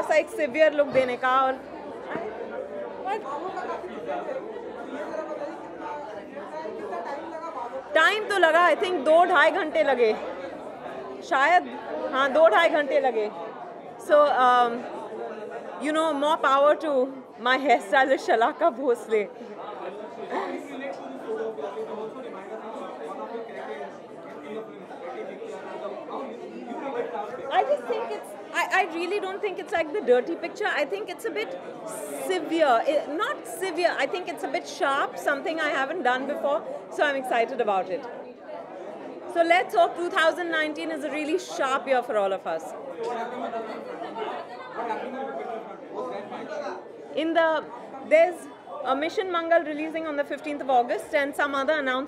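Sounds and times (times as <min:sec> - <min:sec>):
background chatter: 0:00.0 - 0:52.0.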